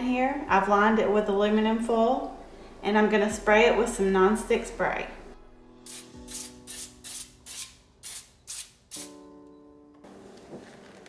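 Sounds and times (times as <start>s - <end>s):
quiet background music: 0.0s - 11.0s
aerosol spray hissing: 5.8s - 9.2s.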